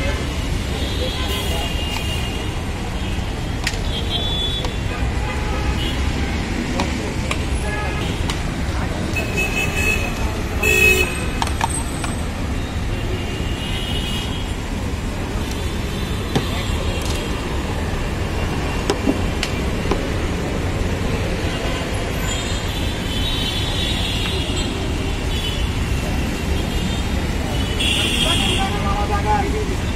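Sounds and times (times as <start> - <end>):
traffic rumble: 0.0 - 29.9
vehicle horn tooting: 27.6 - 28.9.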